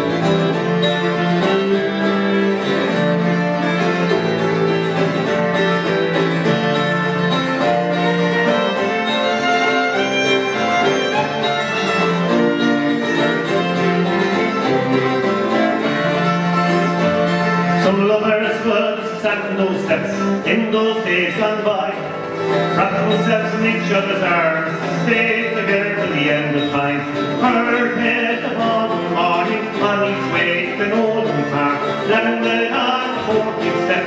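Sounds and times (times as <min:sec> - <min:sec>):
bowed cello: 0:00.0 - 0:18.0
fiddle playing tune: 0:00.0 - 0:34.0
strummed acoustic guitar: 0:00.0 - 0:34.0.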